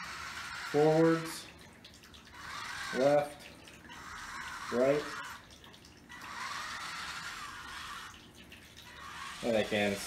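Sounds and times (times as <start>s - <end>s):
small gear motors whirring: 0.0s - 1.4s, 2.3s - 5.5s, 6.1s - 8.2s, 8.8s - 10.0s.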